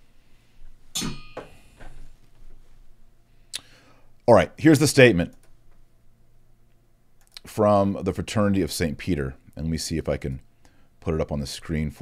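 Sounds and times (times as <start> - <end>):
sharp knock with ringing tone: 1.0 - 1.6.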